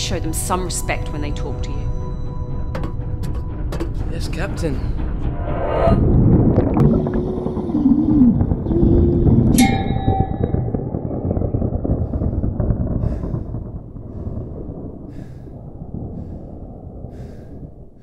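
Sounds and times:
low moaning gliding tones: 5.0 - 13.0
rush of stormy waves: 6.0 - 18.0.

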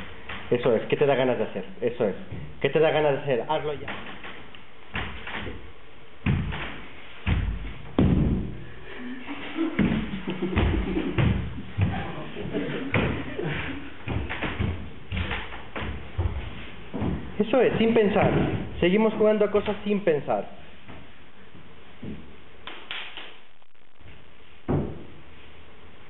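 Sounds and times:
knocks and thumps on stage floor: 6.2 - 8.6, 9.8 - 13.3, 14.0 - 18.8, 24.7 - 25.1.

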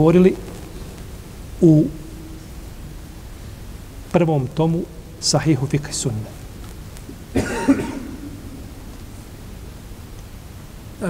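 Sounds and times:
person coughing: 7.3 - 8.4.

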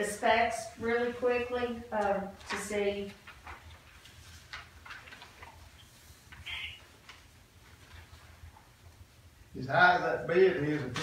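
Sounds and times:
paper rustling: 2.0 - 8.7.

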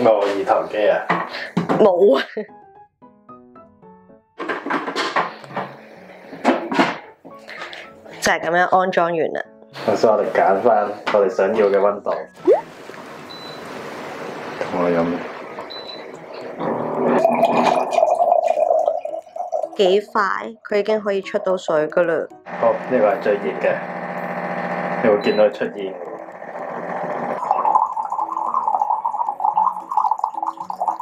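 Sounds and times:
water pouring into a glass: 12.4 - 12.8, 14.6 - 19.9, 25.5 - 31.0
water dispenser gurgling: 12.4 - 20.1, 22.4 - 31.0
high electronic beep: 15.7 - 16.1, 25.0 - 25.8.

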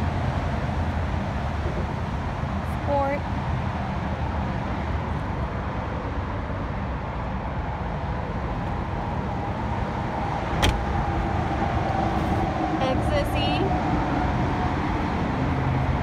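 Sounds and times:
low background rumble: 0.0 - 16.0
car trunk lid shutting: 10.6 - 10.9.

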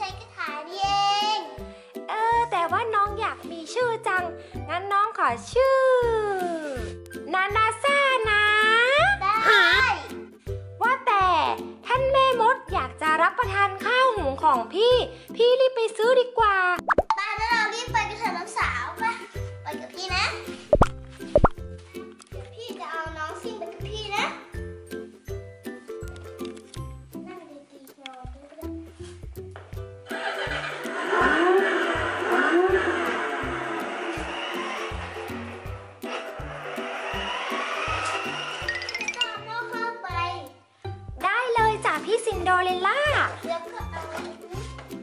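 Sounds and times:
child speaking: 0.0 - 1.6, 9.0 - 10.1, 17.2 - 20.5, 22.6 - 24.5, 27.2 - 28.9, 39.1 - 40.6, 41.2 - 44.8
light children's music: 0.0 - 45.0
background music with steady beat: 28.3 - 45.0.

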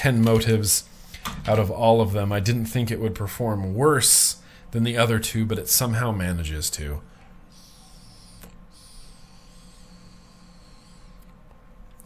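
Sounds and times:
high whistling hiss of air: 7.5 - 11.2.

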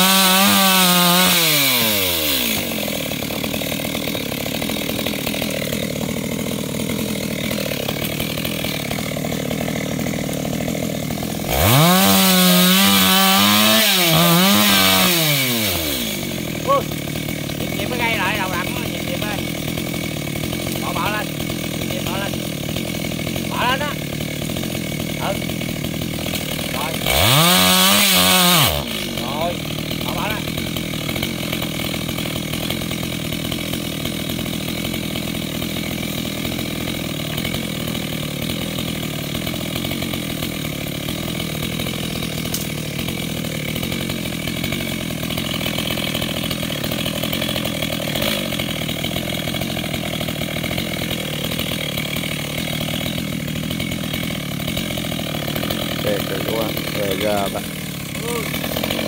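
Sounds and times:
chainsaw revving: 0.0 - 59.0.

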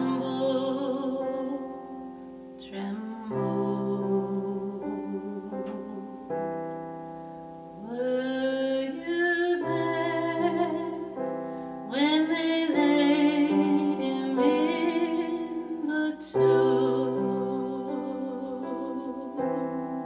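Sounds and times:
woman singing a spiritual: 0.0 - 2.0, 2.6 - 6.2, 7.8 - 19.7
piano accompaniment: 0.0 - 20.0.

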